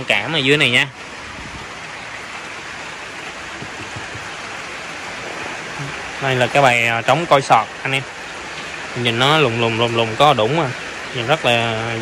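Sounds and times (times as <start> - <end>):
rain on a tin roof: 0.0 - 12.0.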